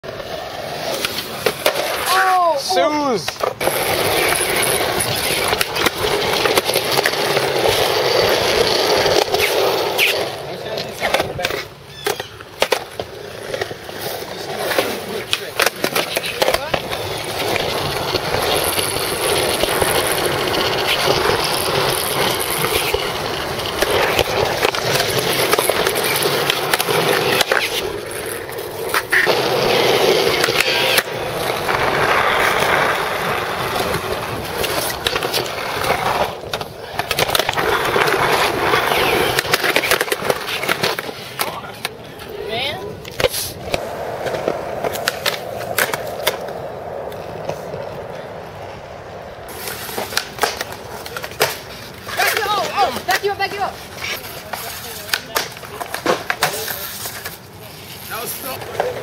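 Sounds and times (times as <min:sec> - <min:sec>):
skateboard rolling on concrete: 0:00.0 - 0:59.0
skateboard clacking on concrete: 0:00.1 - 0:59.0.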